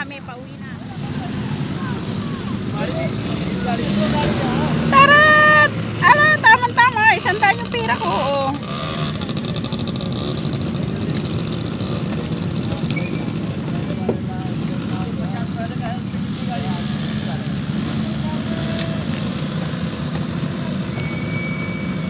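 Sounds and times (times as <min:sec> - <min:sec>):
faint voices: 0:00.0 - 0:22.0
vehicle engines rumbling: 0:00.0 - 0:22.0.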